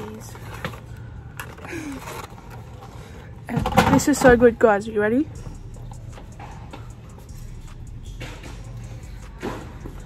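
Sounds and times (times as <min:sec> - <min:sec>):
faint background music: 0:00.0 - 0:10.0
shop hum: 0:00.0 - 0:10.0.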